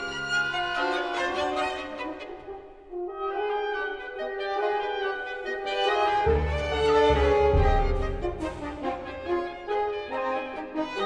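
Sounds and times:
orchestra horns and strings: 0.0 - 11.0.

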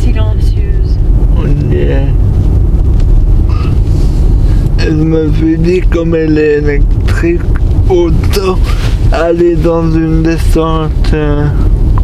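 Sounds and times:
tyre and road rumble: 0.0 - 12.0
wind buffeting microphone: 0.0 - 12.0.

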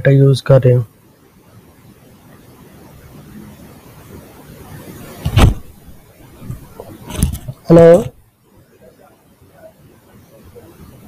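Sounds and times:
faint background hiss: 0.0 - 11.0
loud thump: 5.1 - 8.2.

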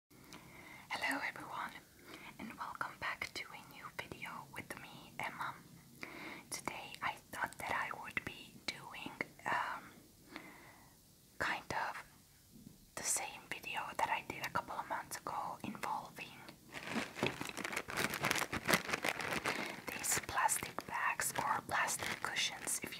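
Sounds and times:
woman whispering: 0.9 - 5.7, 6.5 - 10.0, 11.4 - 12.1, 13.0 - 16.6, 19.8 - 22.9
plastic bag crinkling: 16.7 - 22.9.

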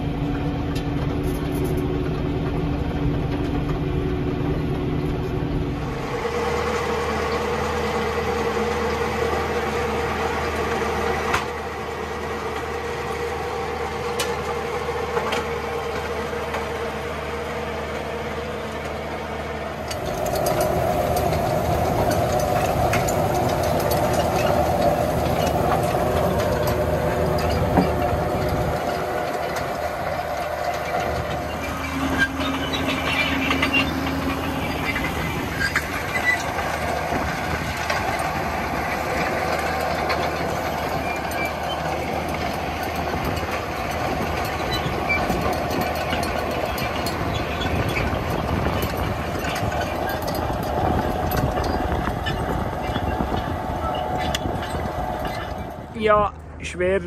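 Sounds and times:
machinery rattling: 0.0 - 57.0
tractor diesel engine running: 0.0 - 57.0.

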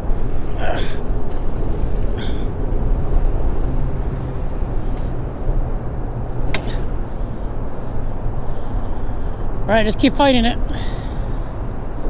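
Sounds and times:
traffic rumble on bridge: 0.0 - 12.0.

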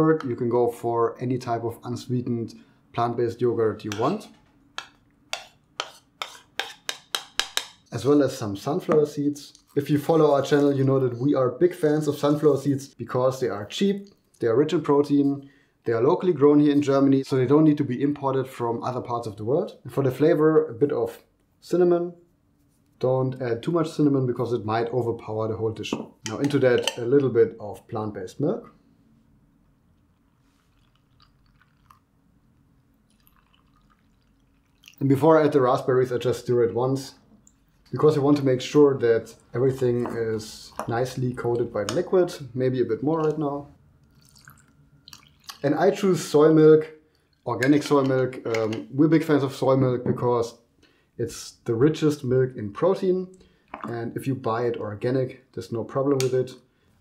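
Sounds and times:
soft drip-like ticks: 30.0 - 32.1, 32.8 - 35.0, 37.3 - 37.9, 44.0 - 45.6, 47.1 - 47.5
milk pouring into glass jar: 30.2 - 32.1, 33.1 - 35.1, 44.0 - 45.7.

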